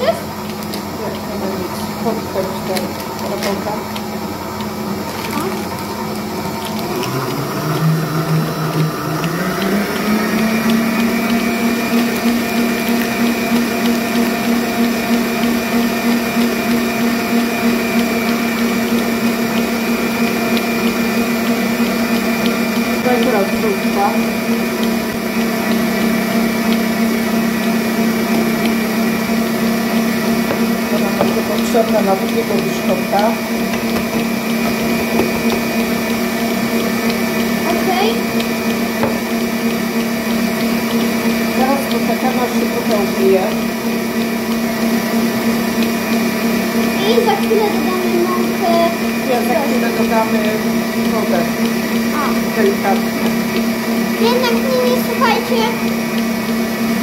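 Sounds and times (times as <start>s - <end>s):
electric stand mixer running: 0.0s - 57.0s.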